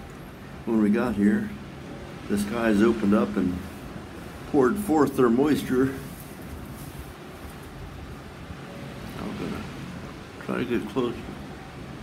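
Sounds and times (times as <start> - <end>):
low outdoor background rumble: 0.0 - 12.0.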